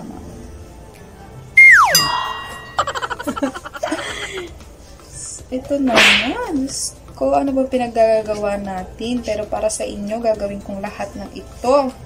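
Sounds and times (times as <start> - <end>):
whistle tone sliding down: 1.6 - 3.2
short jingling notes: 1.6 - 3.8.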